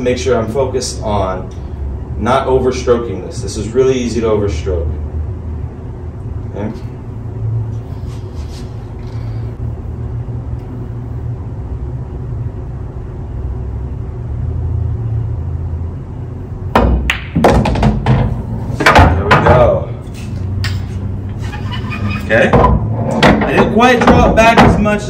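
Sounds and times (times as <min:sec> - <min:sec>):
low room rumble: 0:00.0 - 0:25.0
cue tip striking ball: 0:16.8 - 0:19.6.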